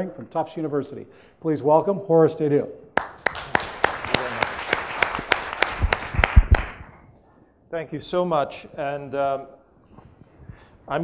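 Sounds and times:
audience applauding: 0:03.0 - 0:06.9.

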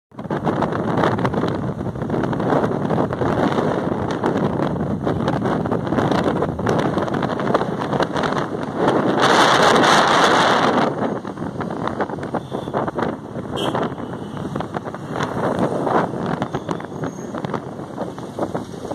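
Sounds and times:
vehicle road noise: 0:00.1 - 0:18.9
wind on microphone: 0:00.1 - 0:18.9.

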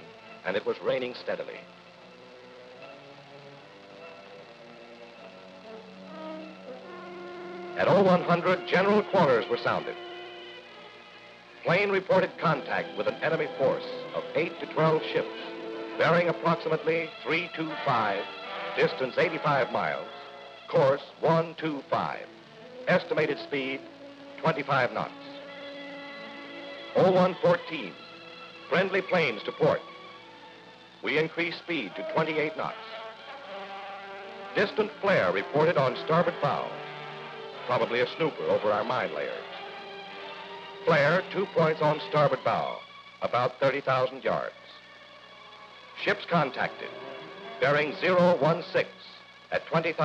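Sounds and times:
soft film score music: 0:00.0 - 0:50.0.

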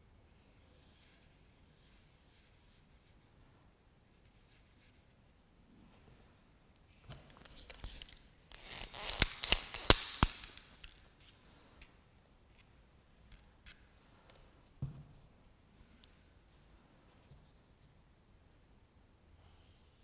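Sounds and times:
sharp clicks: 0:08.6 - 0:10.9
soft knock: 0:14.8 - 0:15.2.

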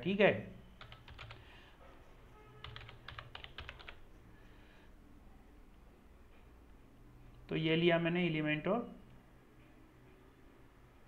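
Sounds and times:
computer keyboard typing: 0:00.8 - 0:01.5, 0:02.6 - 0:04.1.

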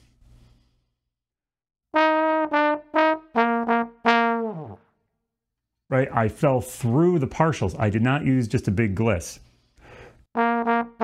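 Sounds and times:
trombone playing jazz figure: 0:01.9 - 0:04.8, 0:10.3 - 0:11.0.

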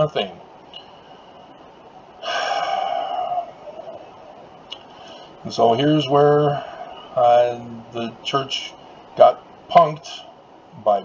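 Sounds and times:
man sighing: 0:02.2 - 0:04.4.

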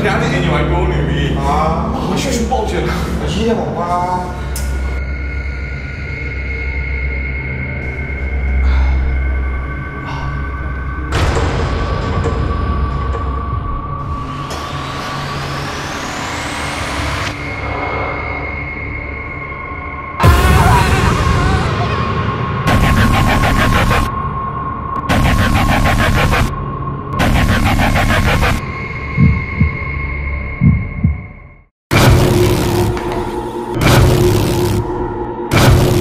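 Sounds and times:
rumbling noise drone: 0:11.2 - 0:36.0
heartbeat sound effect: 0:22.7 - 0:24.1, 0:25.0 - 0:26.5, 0:27.2 - 0:34.9
high-pitched drone: 0:25.0 - 0:31.3.

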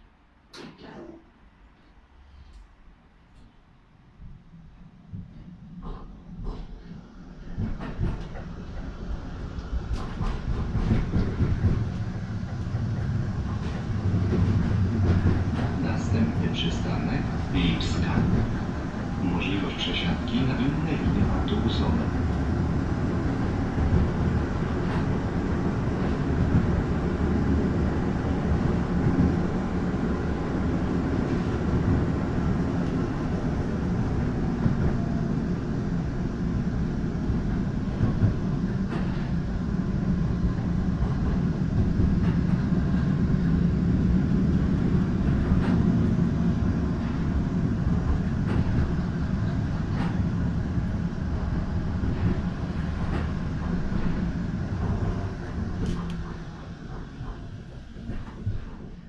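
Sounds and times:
tram wheels rumbling on rails: 0:04.1 - 0:59.0.

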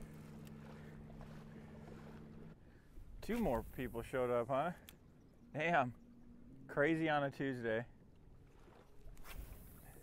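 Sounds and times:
open water noise: 0:00.0 - 0:10.0
fishing rod cast swish: 0:09.1 - 0:09.9.

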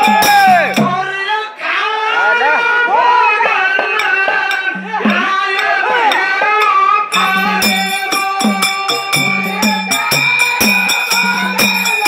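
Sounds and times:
metallic percussion beat: 0:00.0 - 0:01.1, 0:03.4 - 0:12.0
person singing: 0:00.0 - 0:12.0.

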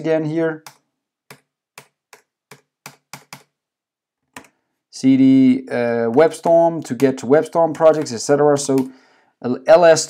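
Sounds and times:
keyboard keystrokes: 0:00.6 - 0:03.5.

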